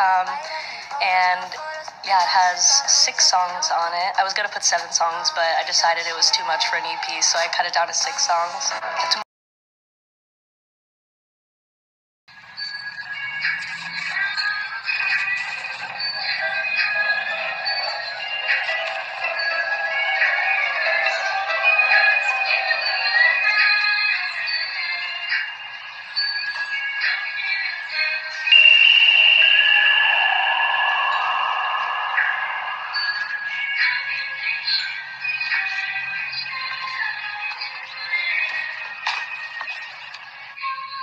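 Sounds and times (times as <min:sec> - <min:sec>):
song with sung vocal: 0:00.0 - 0:09.2, 0:12.4 - 0:41.0.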